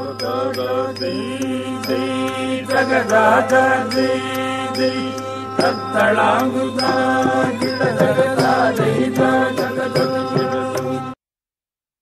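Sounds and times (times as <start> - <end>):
ringing metallic strikes: 0.0 - 11.1
vocal chanting of drum syllables: 0.0 - 11.2.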